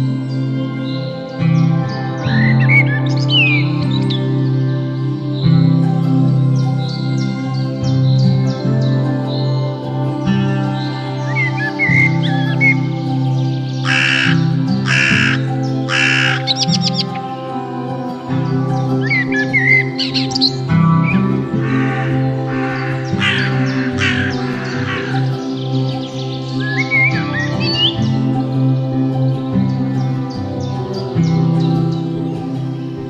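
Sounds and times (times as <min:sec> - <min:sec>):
background music with chords: 0:00.0 - 0:33.0
songbird chirps: 0:00.0 - 0:33.0
crow cawing: 0:13.8 - 0:17.0, 0:21.6 - 0:25.6.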